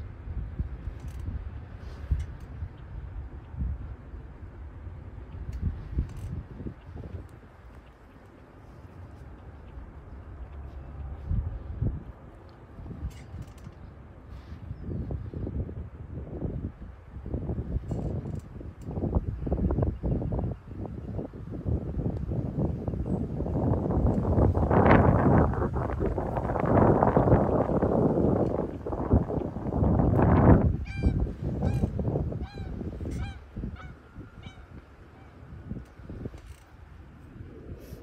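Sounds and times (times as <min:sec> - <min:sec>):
goose honking: 0:30.8 - 0:35.4.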